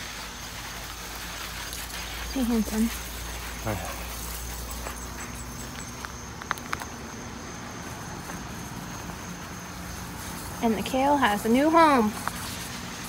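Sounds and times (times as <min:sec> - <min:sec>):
high-pitched insect trill: 0:00.0 - 0:13.0.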